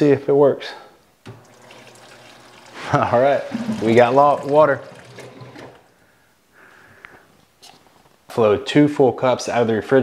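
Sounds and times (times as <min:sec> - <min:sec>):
water dispenser running into cup: 0:01.3 - 0:05.9.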